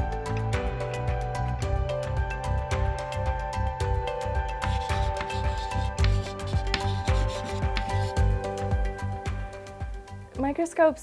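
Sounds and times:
background music with low beat: 0:00.0 - 0:10.6
chalk scratching on a chalkboard: 0:04.6 - 0:08.3.

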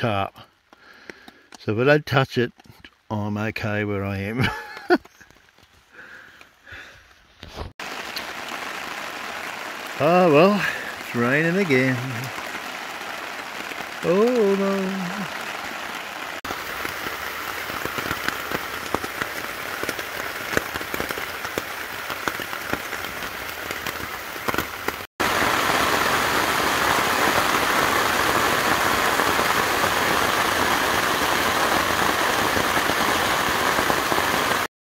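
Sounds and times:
rain drops ticking on a tarp: 0:00.0 - 0:34.7
rushing rain noise: 0:00.0 - 0:34.7.

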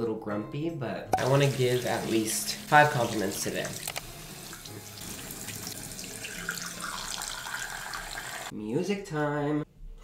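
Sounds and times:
water running from sink tap: 0:01.2 - 0:08.5.

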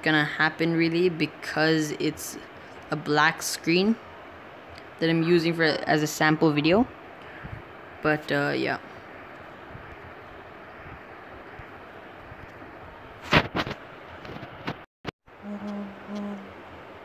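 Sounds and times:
room tone hiss: 0:00.0 - 0:17.0
short low hum: 0:09.0 - 0:17.0.

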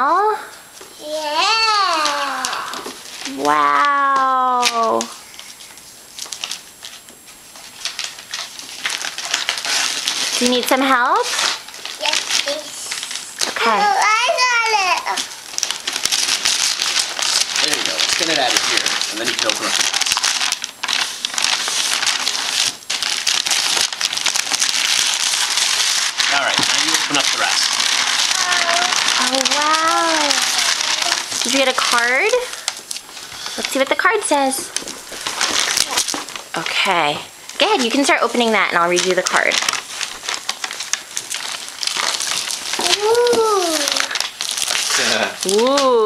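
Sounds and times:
drawn-out child's voice: 0:01.0 - 0:05.0, 0:12.0 - 0:13.0, 0:13.6 - 0:15.3, 0:28.3 - 0:31.4, 0:42.8 - 0:44.2
paper tearing and crumpling: 0:01.0 - 0:46.0.

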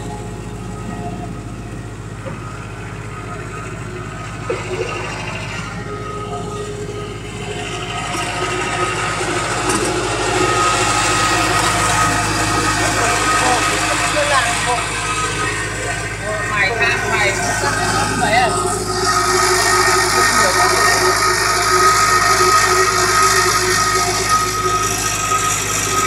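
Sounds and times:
machinery drone with high whine: 0:00.0 - 0:26.0.

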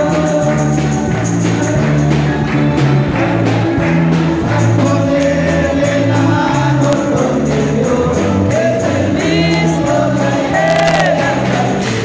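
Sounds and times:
congregation singing a hymn: 0:00.0 - 0:12.0
electric bass line: 0:00.0 - 0:12.0
hands clapping: 0:00.0 - 0:12.0
jingling percussion: 0:00.0 - 0:12.0.

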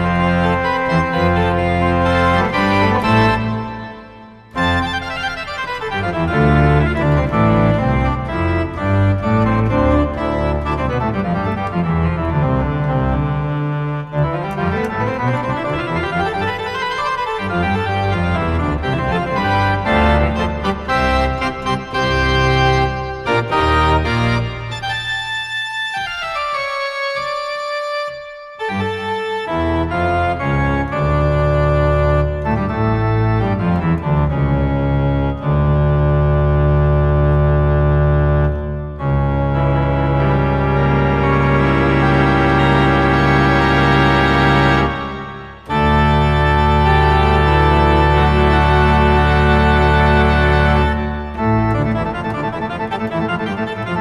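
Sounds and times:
deep organ pedal bass: 0:00.0 - 0:25.2, 0:28.6 - 0:54.0
pipe organ chords: 0:00.0 - 0:54.0.

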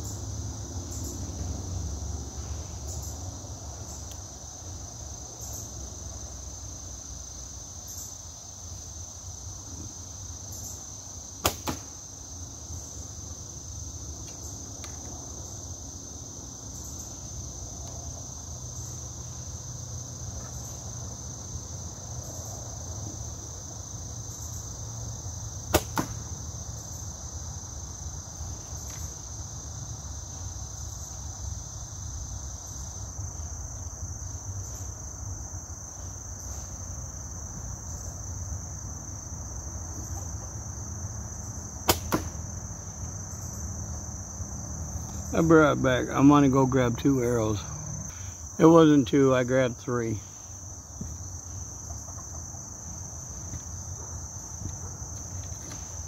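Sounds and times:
high-pitched insect chorus: 0:00.0 - 0:56.0
bowstring snap: 0:11.4 - 0:11.9, 0:25.7 - 0:26.2, 0:41.9 - 0:42.4
arrow striking target: 0:11.4 - 0:12.0, 0:25.7 - 0:26.3, 0:41.8 - 0:42.4.

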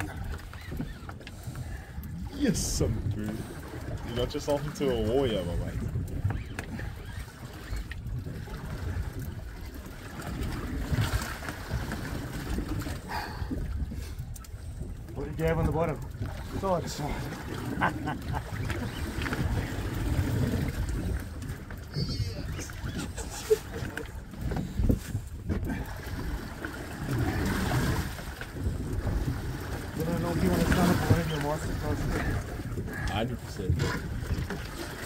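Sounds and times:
wind gusting on microphone: 0:00.0 - 0:35.0.

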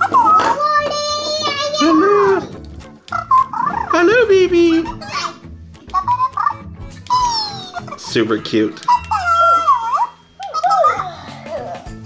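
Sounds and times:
toy making high-pitched cooing: 0:08.9 - 0:11.9.

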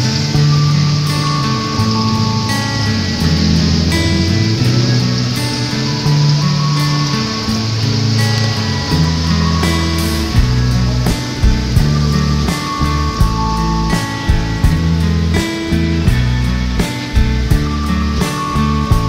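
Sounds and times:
instrumental background music: 0:00.0 - 0:19.0
steady hiss: 0:00.0 - 0:19.0.

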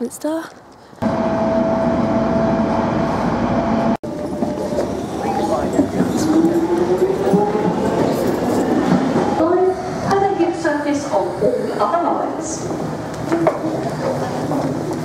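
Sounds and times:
underground train motor whine: 0:01.0 - 0:09.7
passenger train rumbling: 0:01.0 - 0:15.0.

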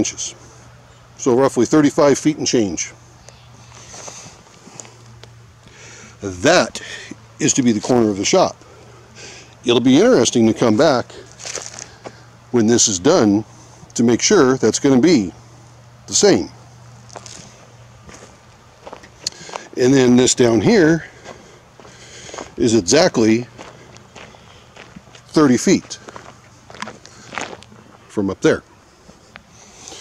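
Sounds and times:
steady low hum: 0:00.0 - 0:30.0
footsteps on dry grass and gravel: 0:03.6 - 0:05.2, 0:10.6 - 0:12.3, 0:16.8 - 0:28.1.

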